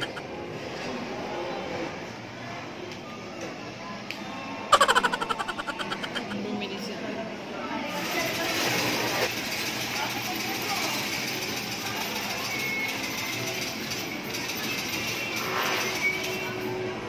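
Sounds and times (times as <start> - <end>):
crowd chatter: 0.0 - 12.6
arcade machines and kiddie rides: 0.0 - 17.0.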